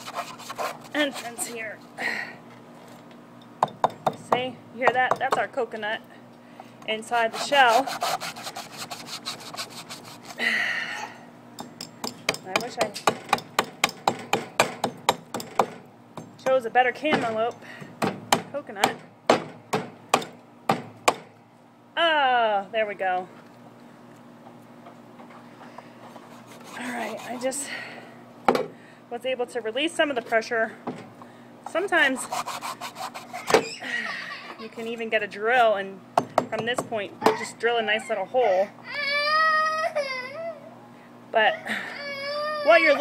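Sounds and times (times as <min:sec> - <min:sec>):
knife scraping coconut husk: 0:00.0 - 0:01.6, 0:07.2 - 0:10.4, 0:26.2 - 0:27.6, 0:32.1 - 0:33.5.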